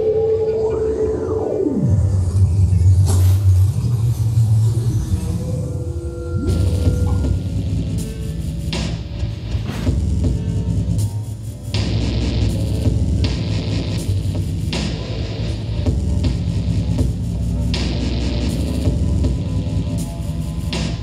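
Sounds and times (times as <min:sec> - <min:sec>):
low throbbing electronic drone: 0:00.0 - 0:21.0.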